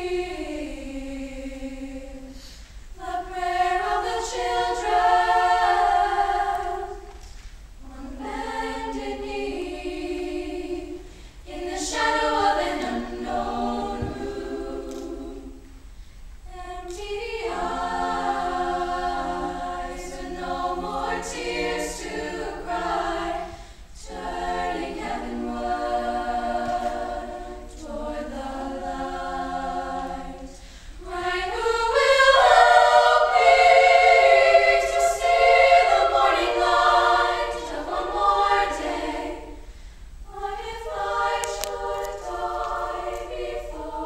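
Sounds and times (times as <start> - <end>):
girls' choir singing in harmony: 0.0 - 44.0.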